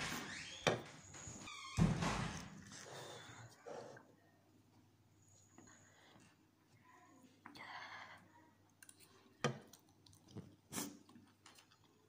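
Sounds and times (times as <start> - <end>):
person chewing noodles: 8.8 - 12.0.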